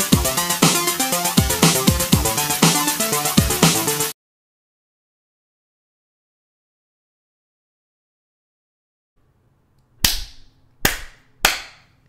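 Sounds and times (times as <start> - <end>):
slow hand claps: 10.0 - 11.9.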